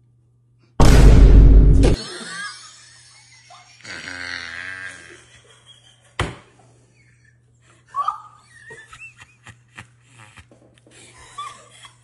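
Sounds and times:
sharp knock: 0.8s - 2.0s
person's strained wavering voice: 3.8s - 5.2s.

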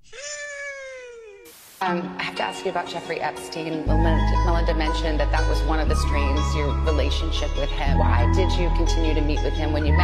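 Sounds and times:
burst of hiss: 1.4s - 1.8s.

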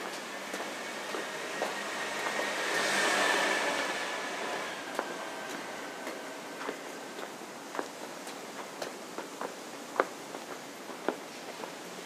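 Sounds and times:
footsteps on pavement: 0.0s - 2.7s, 4.4s - 12.0s
vehicle passing close by: 0.0s - 7.2s.

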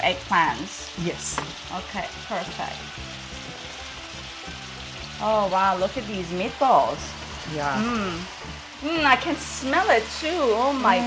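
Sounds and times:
food sizzling in hot oil: 0.0s - 11.0s
quiet background music: 0.0s - 11.0s.

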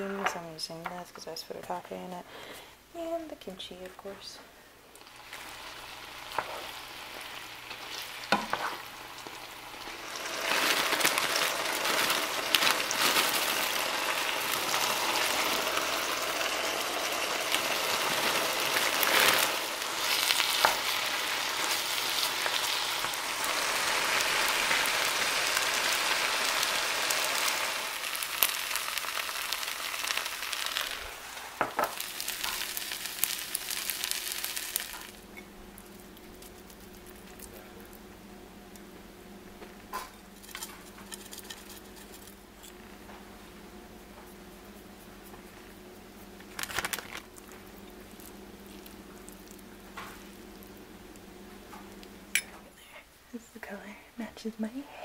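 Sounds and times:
food sizzling in a frying pan: 5.0s - 37.6s, 46.4s - 52.5s.

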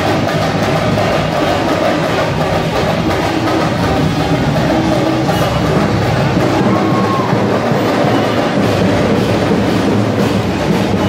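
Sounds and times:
dense steady din: 0.0s - 11.0s
loud music: 0.0s - 11.0s.

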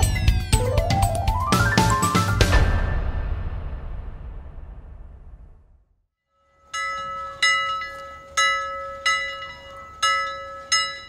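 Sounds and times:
bell ringing: 6.4s - 11.0s.

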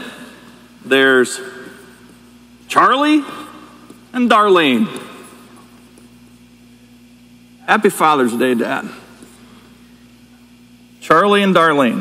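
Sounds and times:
echo of spoken word: 0.0s - 1.9s, 2.7s - 5.2s
steady low hum: 0.0s - 12.0s.

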